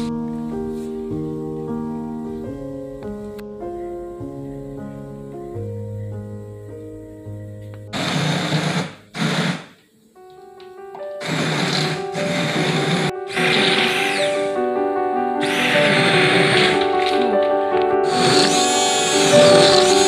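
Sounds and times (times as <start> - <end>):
background music: 0.0 - 20.0
stick blender motor: 8.0 - 9.7, 11.2 - 14.6, 15.4 - 17.3, 18.0 - 20.0.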